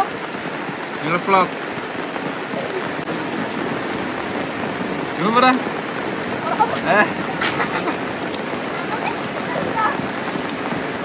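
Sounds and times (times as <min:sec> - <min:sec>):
heavy rain splashing: 0:00.0 - 0:11.0.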